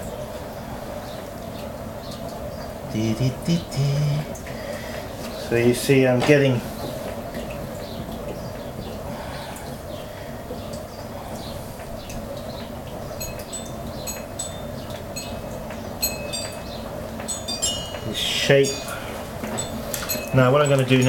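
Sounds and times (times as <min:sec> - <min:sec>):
potter's wheel humming: 0:00.0 - 0:21.0
wind chimes ringing: 0:13.2 - 0:21.0.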